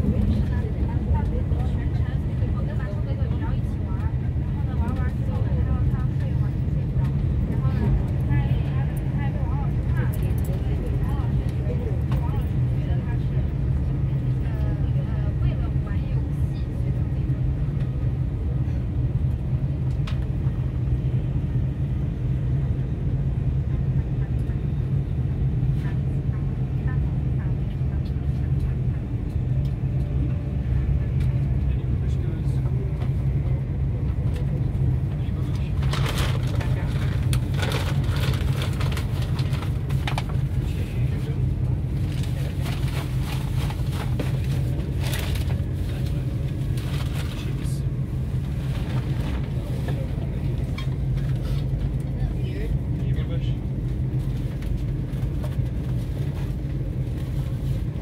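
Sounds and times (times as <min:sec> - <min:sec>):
vehicle rumble from inside: 0:00.0 - 0:58.0.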